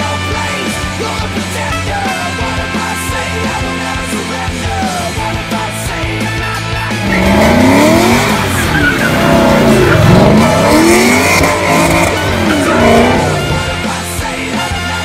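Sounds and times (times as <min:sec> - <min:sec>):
rock music: 0:00.0 - 0:15.0
car engine revving: 0:06.8 - 0:14.2
tyres squealing: 0:06.9 - 0:13.9.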